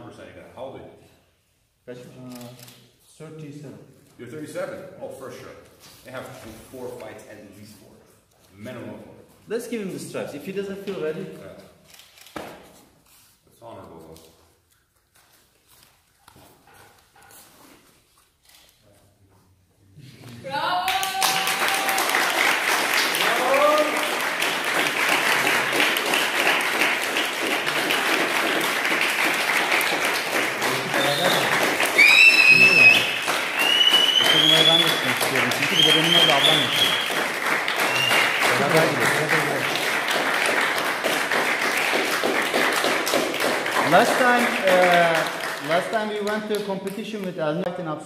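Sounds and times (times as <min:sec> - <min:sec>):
group applauding: 0:20.5 - 0:47.4
whoops and whistles: 0:31.0 - 0:37.2, 0:37.8 - 0:38.4.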